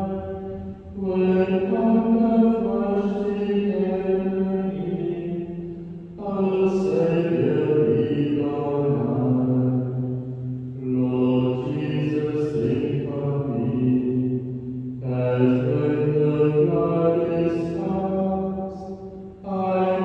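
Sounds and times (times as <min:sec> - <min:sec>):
man chanting long held notes: 0:00.0 - 0:20.0.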